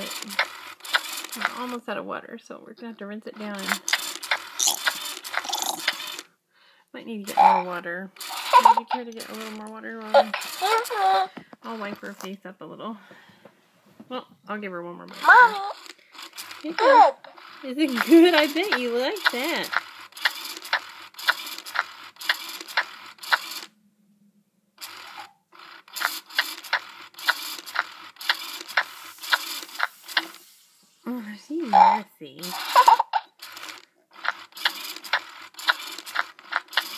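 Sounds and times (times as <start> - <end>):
toy doll mechanism whirring and clicking: 0.0 - 2.0, 3.3 - 6.4, 7.1 - 12.4, 15.0 - 23.8, 24.8 - 36.9.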